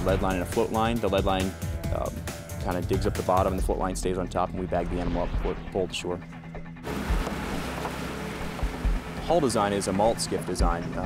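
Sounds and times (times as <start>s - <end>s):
rushing water from boat wake: 6.8s - 11.0s.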